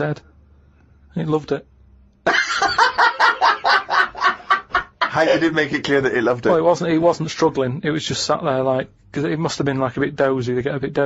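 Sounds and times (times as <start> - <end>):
man cackling with laughter: 2.3 - 5.5.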